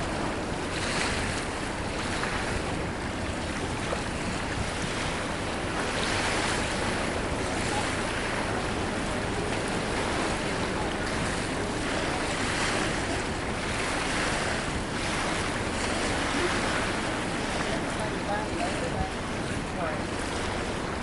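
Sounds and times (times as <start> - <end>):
waves washing against rocks: 0.0 - 21.0
wind buffeting microphone: 0.0 - 21.0.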